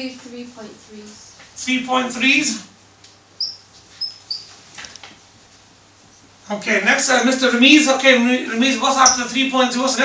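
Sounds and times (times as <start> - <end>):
marker scraping: 3.4 - 4.6
marker squeaking on whiteboard: 3.4 - 4.6, 9.0 - 9.4.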